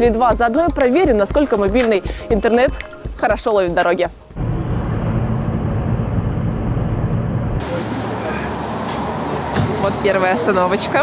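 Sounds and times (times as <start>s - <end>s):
car driving rumble: 4.4s - 11.0s.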